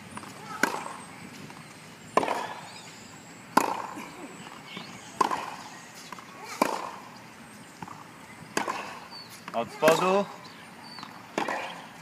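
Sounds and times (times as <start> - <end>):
tennis ball hit by racket: 0.2 - 1.6, 2.2 - 2.7, 3.5 - 4.0, 5.2 - 7.1, 7.8 - 10.0, 11.0 - 12.0.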